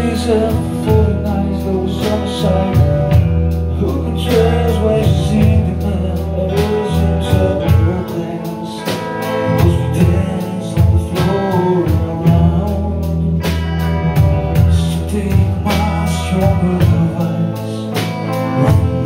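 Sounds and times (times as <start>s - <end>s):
bass and guitar: 0.0s - 19.0s
drums beat: 0.0s - 19.0s
person singing: 0.0s - 19.0s.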